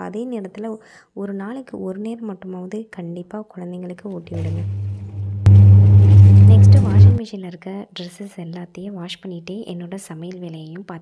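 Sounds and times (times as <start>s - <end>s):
washing machine motor hum: 4.3s - 7.2s.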